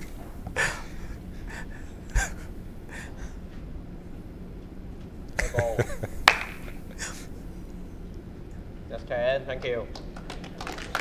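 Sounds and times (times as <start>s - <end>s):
low hum of a large hall: 0.0s - 11.0s.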